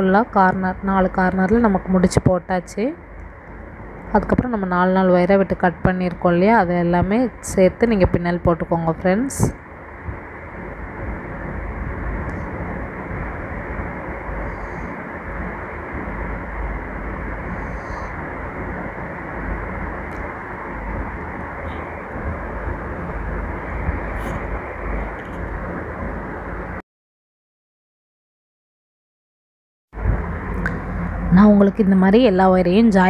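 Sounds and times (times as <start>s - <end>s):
steady rushing noise: 0.0s - 26.8s, 30.0s - 33.0s.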